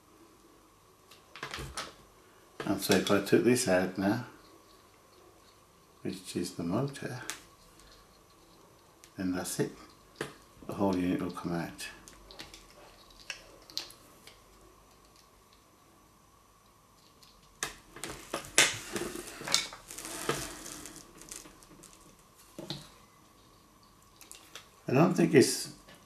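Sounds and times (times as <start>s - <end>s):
metal tool scraping plastic: 18.2s - 22.0s.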